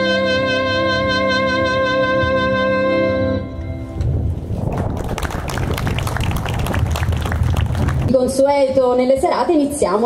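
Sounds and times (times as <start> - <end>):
wind rumble on microphone: 3.7 - 8.8
audience applauding: 4.7 - 8.1.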